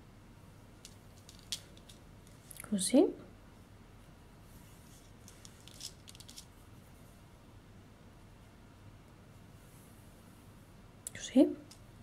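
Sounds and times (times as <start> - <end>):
small metal rings clicking: 5.3 - 6.5.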